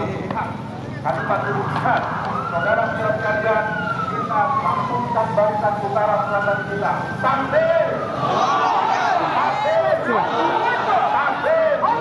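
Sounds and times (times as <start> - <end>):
wailing siren: 1.0 - 12.0.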